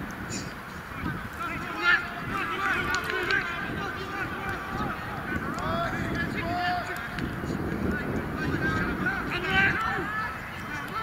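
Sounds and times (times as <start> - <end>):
wind noise on microphone: 0.0 - 11.0
distant shouted calls: 0.7 - 7.2.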